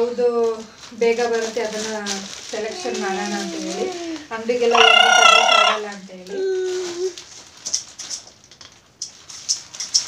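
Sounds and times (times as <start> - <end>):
package rustling: 0.2 - 10.0.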